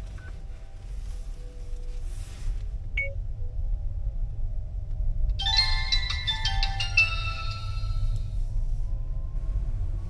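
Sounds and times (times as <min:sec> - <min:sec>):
bright struck-note music: 0:05.4 - 0:08.3
vehicle cabin rumble: 0:08.0 - 0:10.0.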